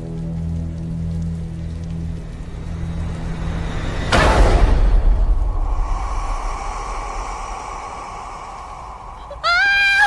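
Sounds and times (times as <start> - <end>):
deep rumbling drone: 0.0 - 10.0.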